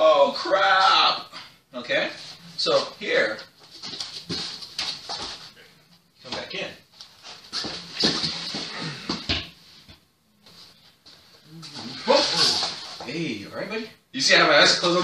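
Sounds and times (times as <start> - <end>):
scuffling: 3.3 - 5.6, 6.2 - 9.3
men grunting and gasping: 8.5 - 9.5.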